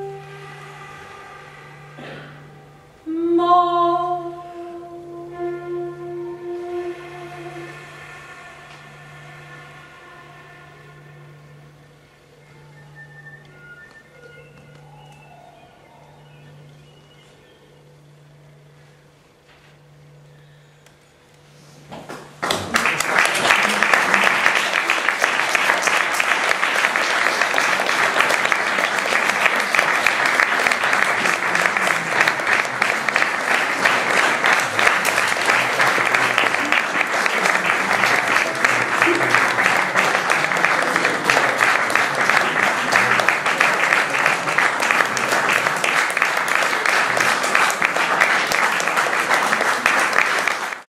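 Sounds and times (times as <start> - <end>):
audience applauding: 22.1 - 50.9.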